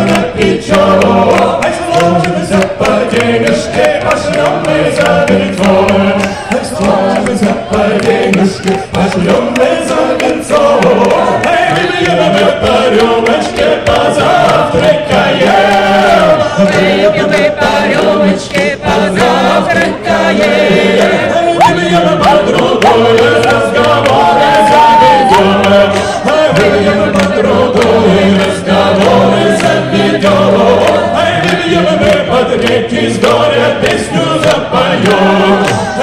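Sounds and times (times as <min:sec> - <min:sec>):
choir singing: 0:00.0 - 0:36.0
man singing lead: 0:00.0 - 0:36.0.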